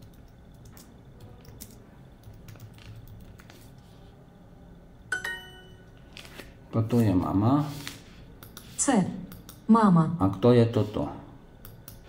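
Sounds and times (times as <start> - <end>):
keyboard typing: 0.0 - 3.6
bright app chime: 5.1 - 5.9.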